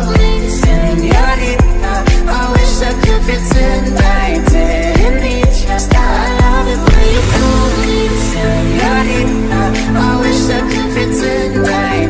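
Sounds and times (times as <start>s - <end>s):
pop song with singing: 0.0s - 12.0s.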